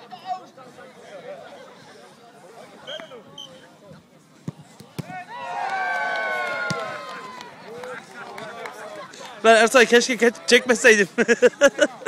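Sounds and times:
quiet chatter: 0.0s - 5.4s.

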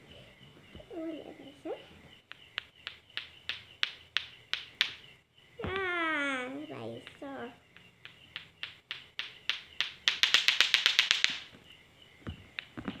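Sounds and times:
clacker toy balls clacking: 2.3s - 5.9s, 6.9s - 11.5s.

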